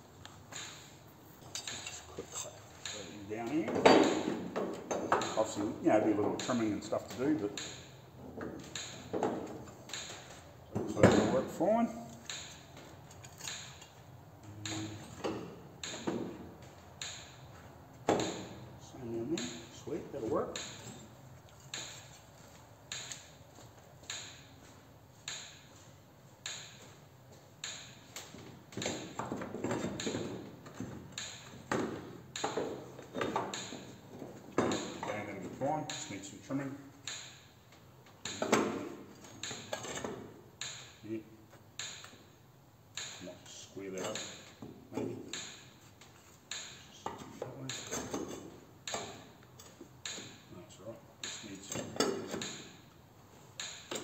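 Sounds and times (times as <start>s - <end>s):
electric fence energizer ticking: 14.4s - 15.1s, 42.9s - 43.3s.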